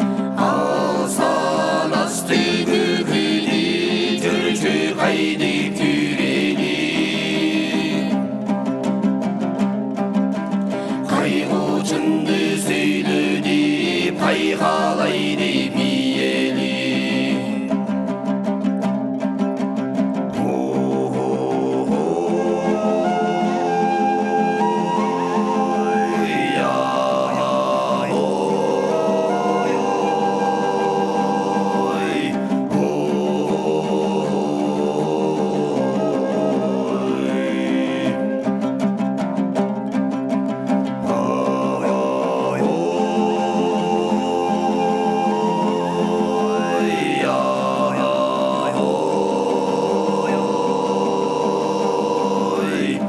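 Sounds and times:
lutes strumming: 0.0s - 53.0s
low throat singing drone: 20.4s - 38.3s, 41.0s - 53.0s
high whistling overtone: 22.2s - 32.5s, 35.5s - 38.8s, 41.1s - 48.2s.

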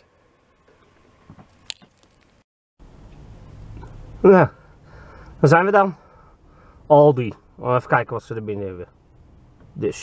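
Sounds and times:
low background rumble: 2.3s - 10.0s.

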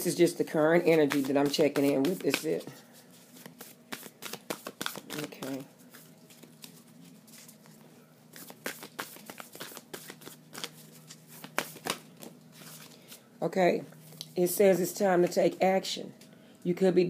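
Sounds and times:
cards being shuffled: 0.6s - 13.2s.

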